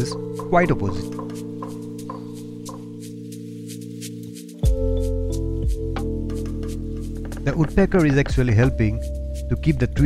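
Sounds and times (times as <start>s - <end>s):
background music chord: 0.0s - 10.0s
woodpecker pecking at branch: 0.4s - 3.0s, 6.3s - 8.6s.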